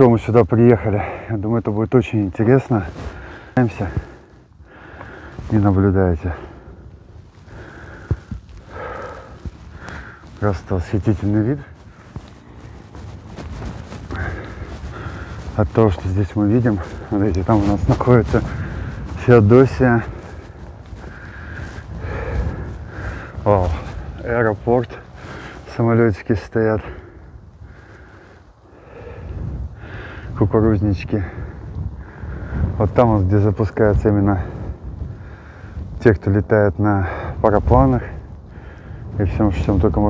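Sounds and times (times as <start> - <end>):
wind rumble on microphone: 0.0 - 40.0
person breathing close to mic: 2.9 - 5.6, 6.2 - 15.6, 18.2 - 19.2, 20.0 - 24.2, 25.0 - 25.7, 26.8 - 30.4, 31.3 - 32.8, 34.5 - 35.9, 38.5 - 39.1
person exhaling: 7.5 - 10.2.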